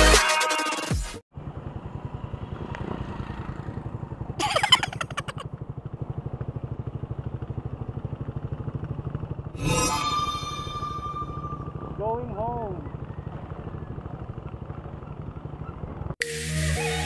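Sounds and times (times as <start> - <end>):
small motorcycle engine running: 1.3 - 16.2.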